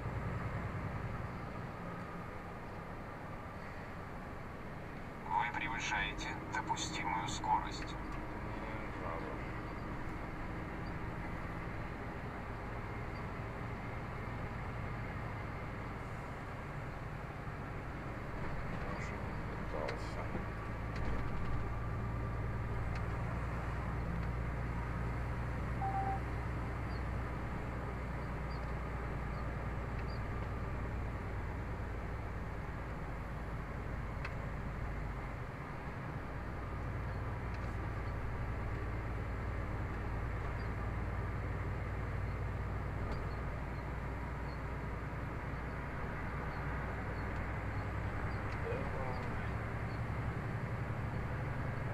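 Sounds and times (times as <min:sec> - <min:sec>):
tyre road noise: 0:00.0 - 0:51.9
vehicle engine drone: 0:00.0 - 0:51.9
short electronic beep: 0:25.8 - 0:26.3.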